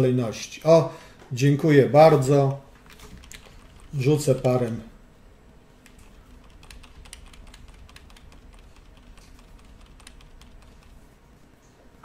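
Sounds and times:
keyboard keys clicking: 2.8 - 4.8, 5.8 - 11.1.

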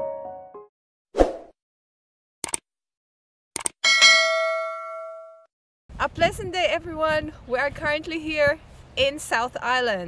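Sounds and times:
bright bell ding: 3.8 - 5.5.

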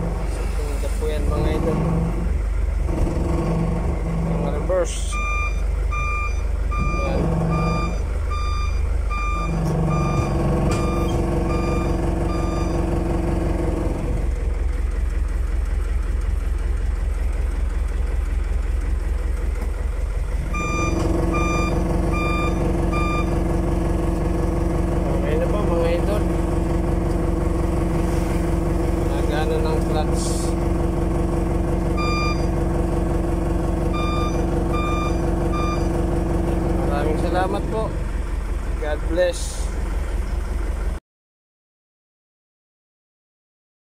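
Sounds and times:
truck engine idling: 0.0 - 41.0
truck reverse warning beeper: 4.9 - 13.5, 20.4 - 26.3, 31.7 - 37.8.

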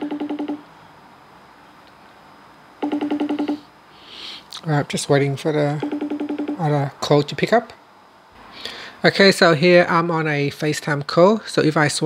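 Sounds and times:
phone call ringing trill: 2.8 - 3.7, 5.8 - 6.7.

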